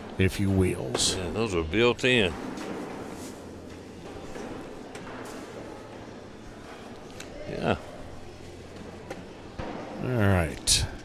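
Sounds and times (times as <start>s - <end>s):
murmur of large hall: 0.0s - 11.0s.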